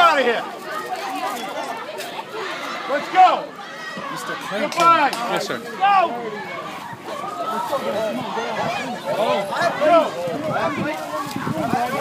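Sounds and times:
crowd of students talking: 0:00.0 - 0:12.0.

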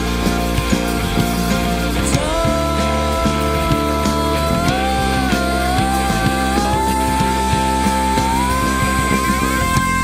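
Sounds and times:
live rock band: 0:00.0 - 0:10.0.

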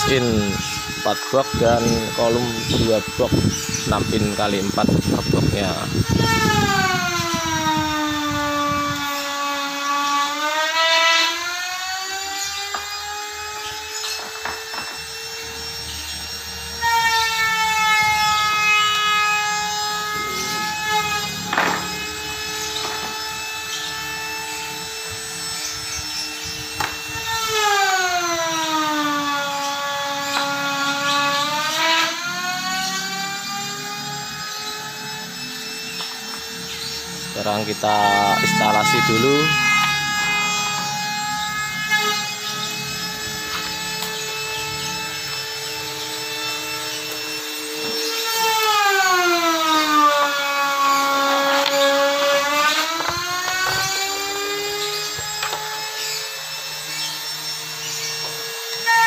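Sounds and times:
sliding droning tone: 0:10.2 - 0:58.9.

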